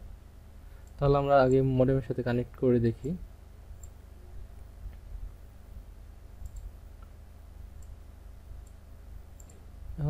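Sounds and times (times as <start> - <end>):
faint low hum: 0.0 - 10.0
computer mouse clicking: 6.4 - 7.2, 8.6 - 9.7.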